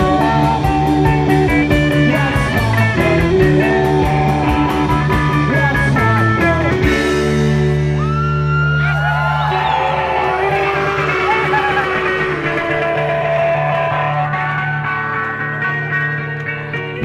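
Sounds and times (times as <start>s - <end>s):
electric guitars and bass drone: 0.0s - 17.0s
guitar feedback tones: 0.0s - 17.0s.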